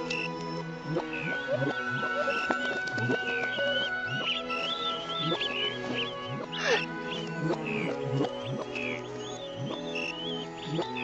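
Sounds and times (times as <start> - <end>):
orchestral music: 0.0 - 11.0.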